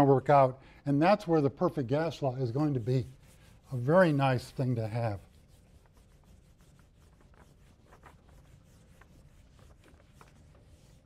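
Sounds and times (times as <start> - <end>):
eraser rubbing on whiteboard: 2.0 - 11.0.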